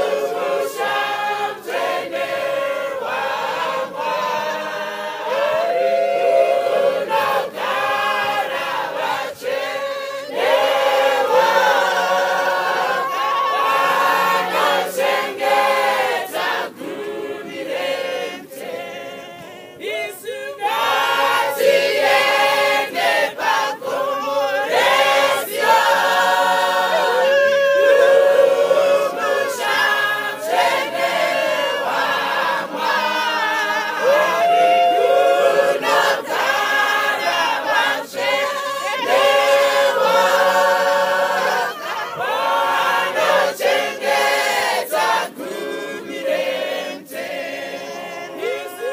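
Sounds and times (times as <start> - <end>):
choir singing a hymn a cappella: 0.0 - 48.9.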